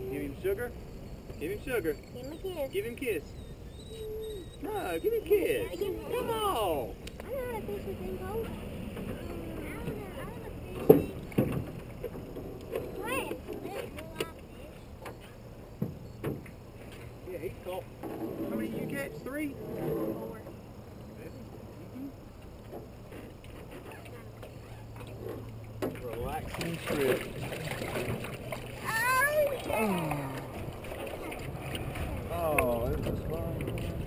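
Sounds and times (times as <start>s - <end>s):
high chirps: 0.0s - 6.4s
indistinct voices: 28.8s - 34.0s.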